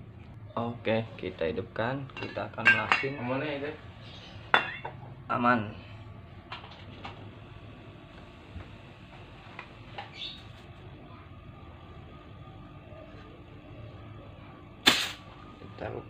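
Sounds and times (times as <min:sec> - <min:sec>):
freezer compressor humming: 0:00.0 - 0:16.0
sharp loud click: 0:14.8 - 0:15.2.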